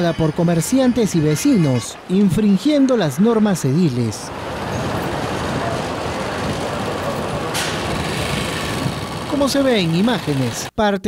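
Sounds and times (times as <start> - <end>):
street traffic: 0.0 - 10.8
vehicle engine rumble: 4.2 - 10.7.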